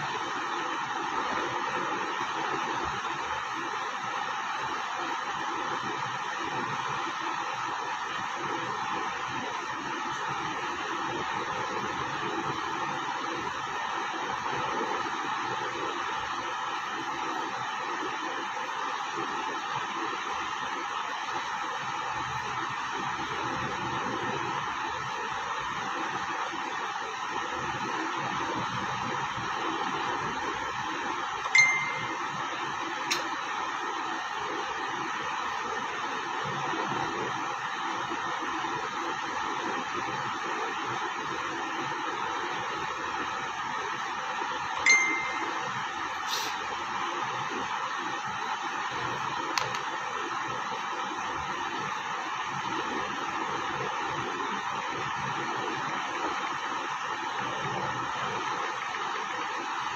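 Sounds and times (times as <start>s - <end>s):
steady hissing noise: 0.0s - 59.9s
short high ding: 31.5s - 32.3s, 44.9s - 45.7s.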